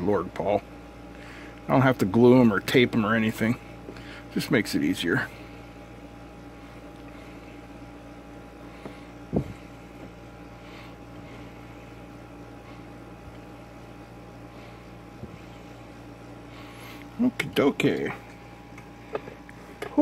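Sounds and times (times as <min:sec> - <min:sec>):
fan motor hum: 0:00.0 - 0:20.0.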